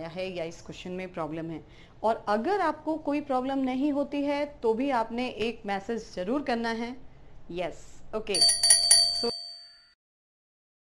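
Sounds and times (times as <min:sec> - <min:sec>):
bell-like ding: 0:08.4 - 0:10.0.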